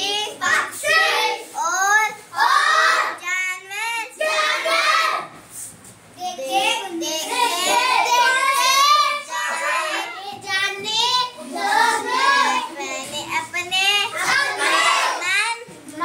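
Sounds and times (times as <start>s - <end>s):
girl singing unaccompanied: 6.2s - 16.0s.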